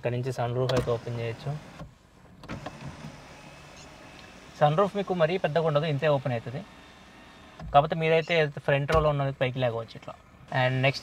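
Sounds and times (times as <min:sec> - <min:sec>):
electric sunroof motor running: 0:02.5 - 0:07.6.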